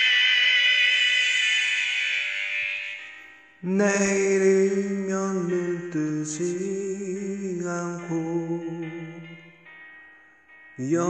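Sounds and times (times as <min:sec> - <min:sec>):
karaoke backing music: 0:00.0 - 0:10.0.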